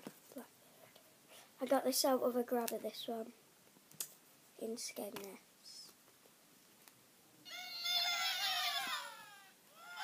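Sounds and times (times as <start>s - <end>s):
toy high falling squawk: 7.4s - 10.0s.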